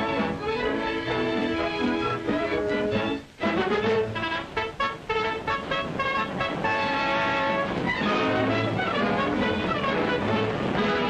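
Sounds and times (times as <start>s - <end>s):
brass music: 0.0s - 11.0s.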